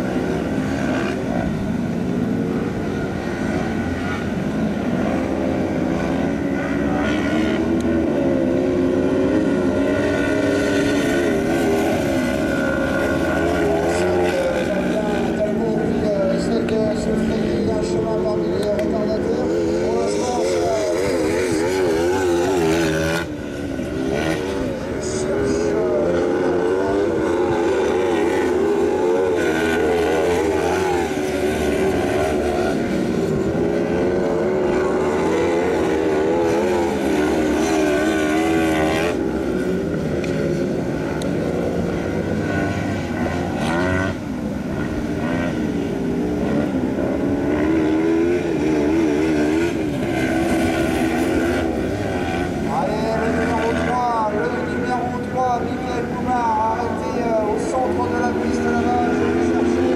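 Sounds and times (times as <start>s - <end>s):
buggy engines racing: 0.0s - 59.9s.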